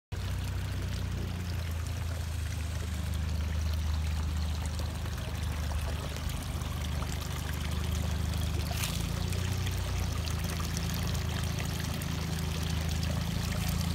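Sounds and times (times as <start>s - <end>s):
steady low hum: 0.1s - 13.9s
water pouring into pond: 0.1s - 13.9s.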